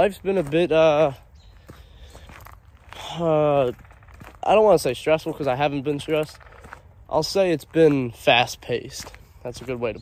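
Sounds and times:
soft footsteps on woodland floor: 0.0s - 10.0s.

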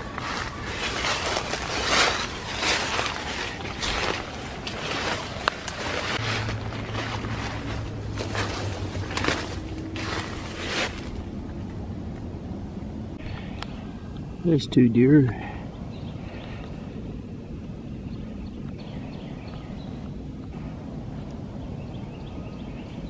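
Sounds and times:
footsteps crunching dry leaves: 0.0s - 11.3s
low steady hum: 0.0s - 23.0s.

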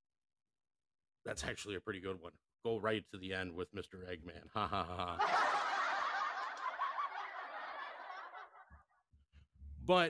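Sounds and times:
laughter: 4.4s - 9.0s.

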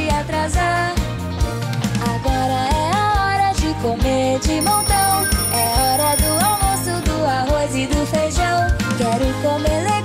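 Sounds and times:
upbeat children's music: 0.0s - 10.0s
cartoon alarm clock ringing: 4.6s - 7.4s.

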